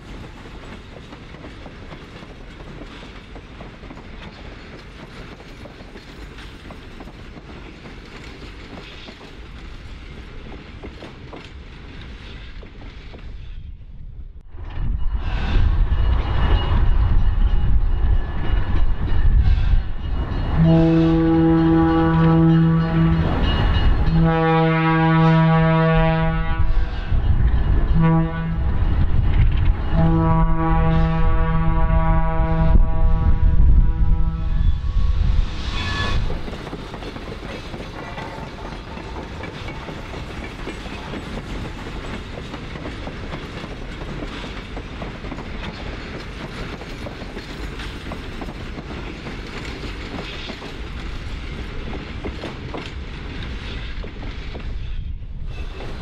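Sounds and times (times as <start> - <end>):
wheels clacking on rail joints: 0.0 - 13.7, 36.1 - 56.0
rumble of passing locomotives: 0.0 - 56.0
diesel locomotive horn: 20.5 - 26.9, 27.9 - 28.8, 29.9 - 35.0.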